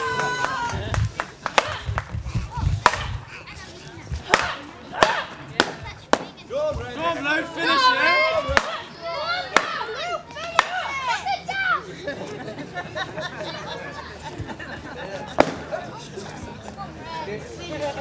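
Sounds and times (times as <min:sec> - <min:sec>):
voices: 0:00.0 - 0:18.0.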